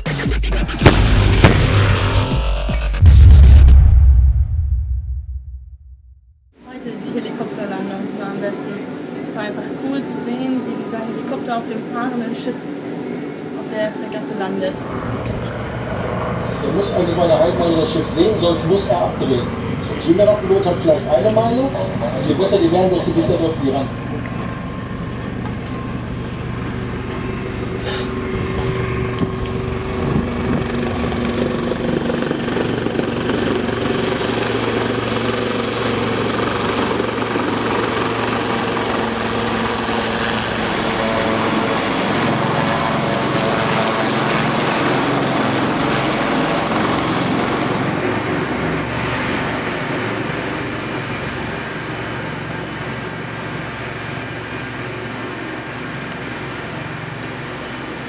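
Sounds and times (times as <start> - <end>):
helicopter rotors and turbines: 6.6 - 58.0.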